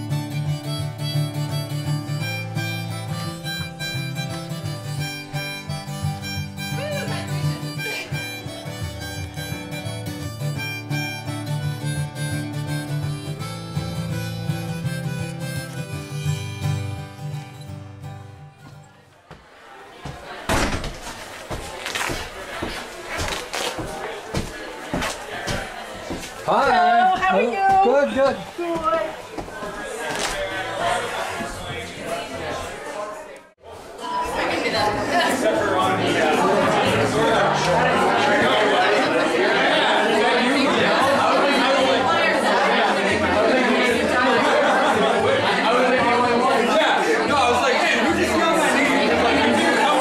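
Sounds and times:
crowd talking: 0:00.0 - 0:50.0
door slamming shut: 0:20.4 - 0:21.1.

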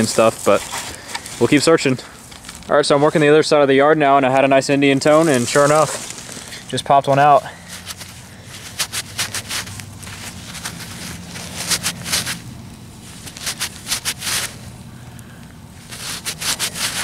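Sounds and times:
gloved fingers rubbing coin: 0:07.7 - 0:14.7, 0:15.8 - 0:17.0.

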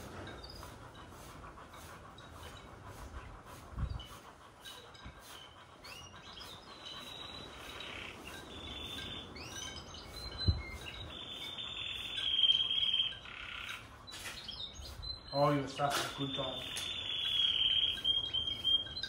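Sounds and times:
birds chirping and singing: 0:00.0 - 0:19.0.

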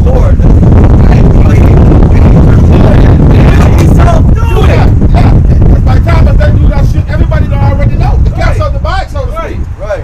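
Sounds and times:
men's voices: 0:00.0 - 0:10.0
wind rumble on microphone: 0:00.0 - 0:10.0.

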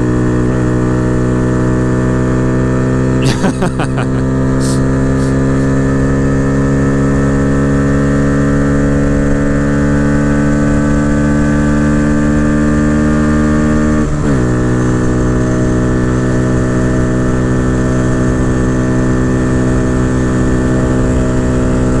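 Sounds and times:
motorcycle engine accelerating: 0:00.0 - 0:03.3, 0:04.0 - 0:22.0.

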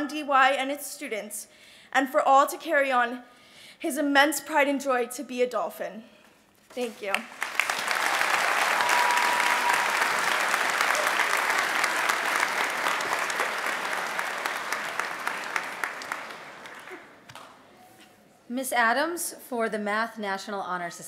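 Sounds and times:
large crowd applauding: 0:07.1 - 0:17.6.

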